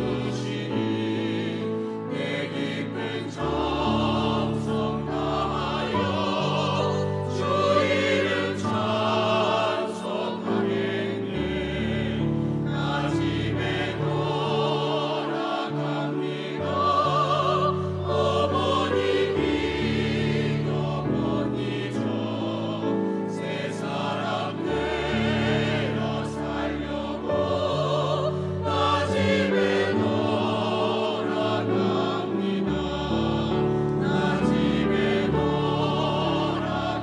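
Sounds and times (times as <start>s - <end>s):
choir singing a hymn: 0.0s - 37.0s.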